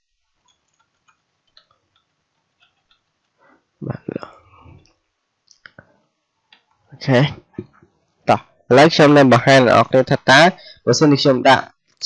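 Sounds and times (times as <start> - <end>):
computer keyboard keystrokes: 0.4 - 3.1
person speaking: 3.8 - 4.9, 6.9 - 11.7.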